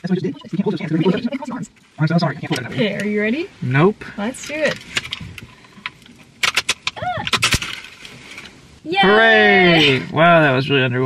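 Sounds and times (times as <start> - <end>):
sharp clicks of cracker straining: 4.8 - 8.6.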